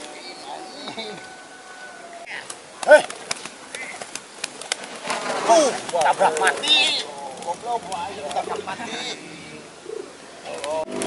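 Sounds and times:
pigeons flapping wings: 2.3 - 8.7, 10.5 - 11.0.

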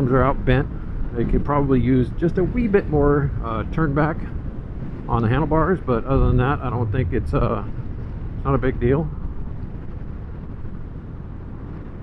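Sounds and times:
wind rushing on microphone: 0.0 - 12.0.

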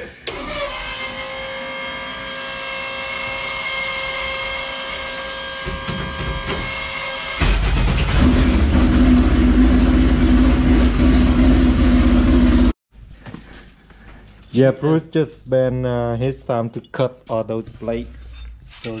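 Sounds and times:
race car engine starting and running: 0.2 - 1.0, 7.2 - 12.8.

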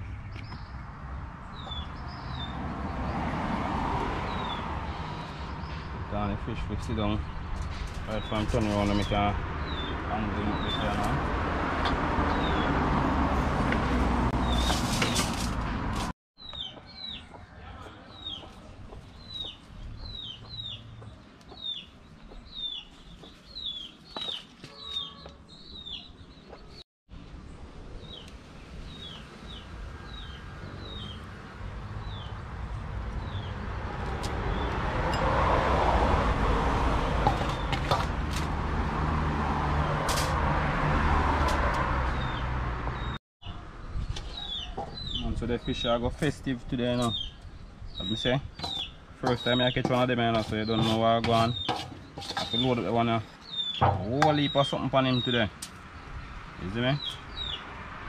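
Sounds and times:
bird chirping: 0.0 - 3.2, 16.4 - 31.4, 42.1 - 57.7.

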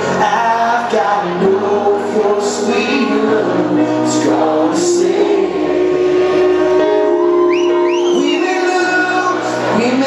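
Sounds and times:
keyboard chords: 0.0 - 10.0.

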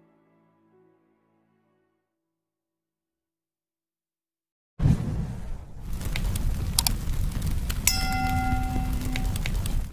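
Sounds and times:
steady low rumble: 5.0 - 9.9
click: 6.2 - 7.0
bell-like chime: 7.9 - 9.5.

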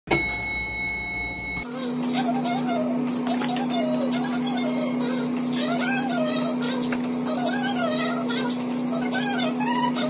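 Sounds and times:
bell-like chime ringing: 0.1 - 1.7
low hum: 0.1 - 10.0.

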